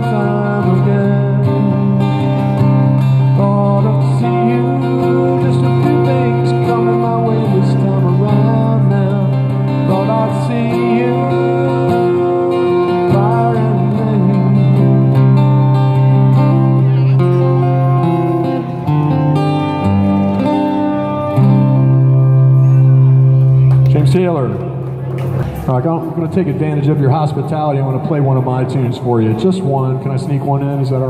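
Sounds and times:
strummed acoustic guitar: 0.0 - 31.0.

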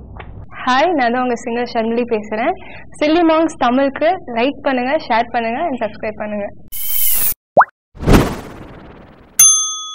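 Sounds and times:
short swish: 8.0 - 9.2
whooshing hit: 8.0 - 9.4.

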